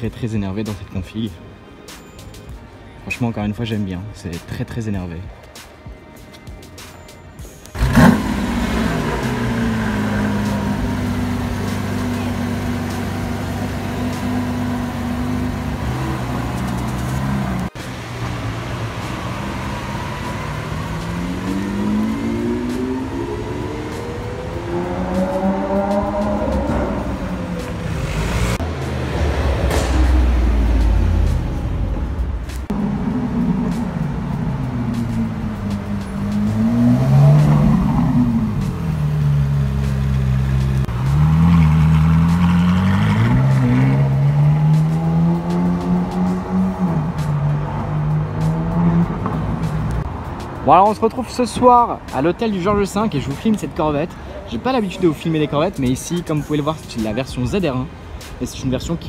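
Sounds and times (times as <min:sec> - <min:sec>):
car engine idling: 0:07.6 - 0:50.6
car engines revving and accelerating: 0:07.6 - 0:59.0.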